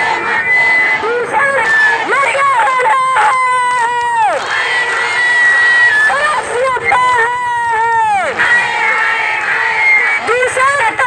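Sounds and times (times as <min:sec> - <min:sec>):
crowd of women shouting: 0:00.0 - 0:11.0
shouted call through a loudhailer: 0:00.2 - 0:11.0.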